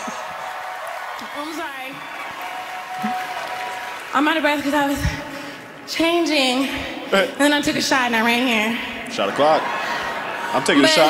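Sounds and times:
audience applause: 0.0s - 4.9s.

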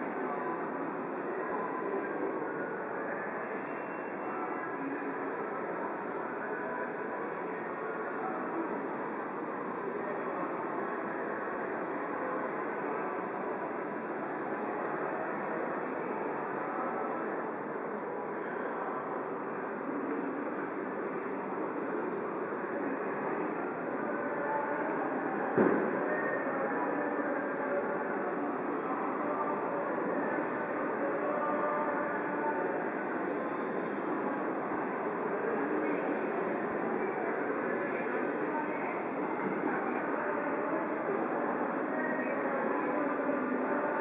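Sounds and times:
crowd voices: 0.0s - 44.0s.

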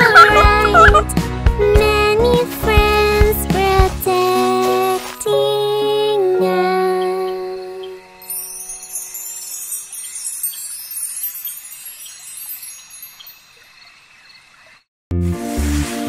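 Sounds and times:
twinkling high chime shimmer: 7.9s - 13.6s.

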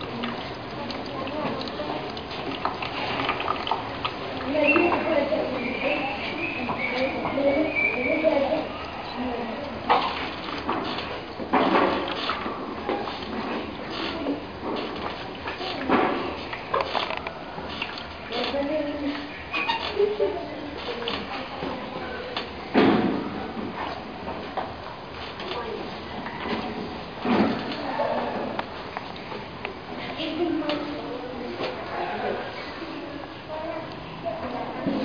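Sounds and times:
indistinct voices in a room: 0.0s - 35.0s.

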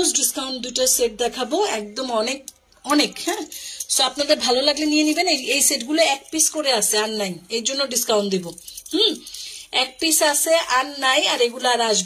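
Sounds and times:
person talking: 0.0s - 12.0s
jewelry jingling: 2.1s - 11.9s.

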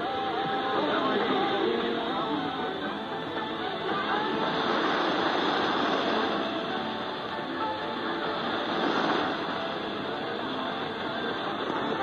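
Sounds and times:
radio hiss and interference: 0.0s - 12.0s
weak radio broadcast music: 0.0s - 12.0s.

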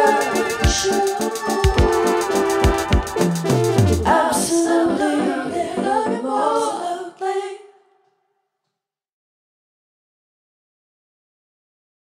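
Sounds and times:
singing with vocal harmonies: 0.0s - 8.2s.

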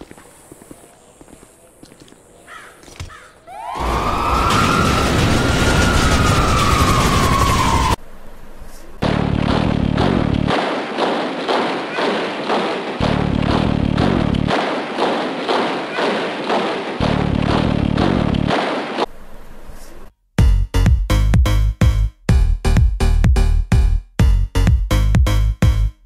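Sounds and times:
low bass tone: 20.4s - 26.0s.

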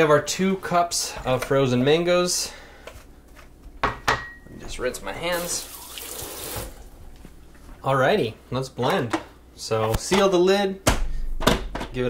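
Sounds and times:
faucet water running: 5.2s - 7.0s.

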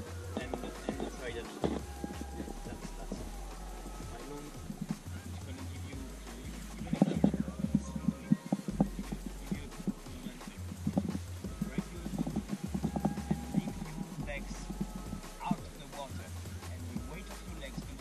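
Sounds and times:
muffled voice talking: 0.0s - 18.0s.

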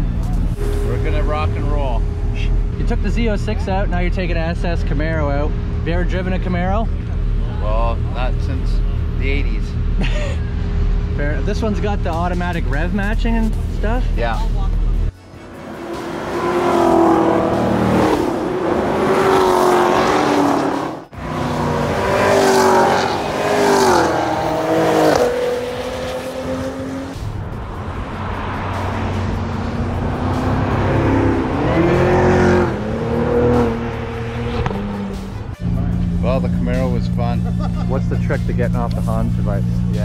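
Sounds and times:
background music: 0.0s - 6.2s, 10.6s - 20.4s, 24.1s - 40.0s
race car engines: 0.0s - 40.0s.

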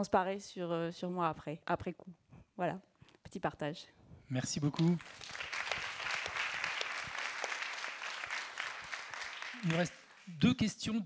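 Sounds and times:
audience applauding: 4.6s - 10.5s.

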